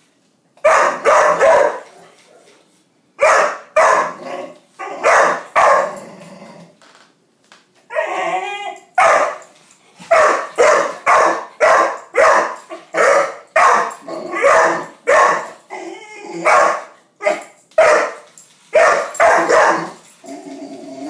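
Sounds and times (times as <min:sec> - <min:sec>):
dog barking: 0:00.6 - 0:02.6, 0:03.2 - 0:04.2, 0:05.0 - 0:05.9, 0:09.0 - 0:09.4, 0:10.1 - 0:15.6, 0:16.4 - 0:20.0.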